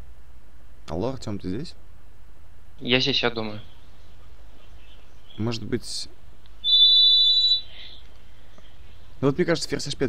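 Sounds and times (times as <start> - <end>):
soft hiss: 0.0 - 6.7, 7.5 - 10.0.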